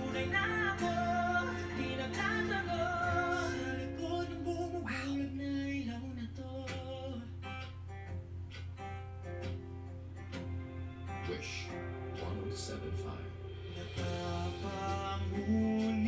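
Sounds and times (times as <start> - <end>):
man singing: 0.0 - 7.4, 11.3 - 16.0
acoustic guitar: 0.0 - 16.0.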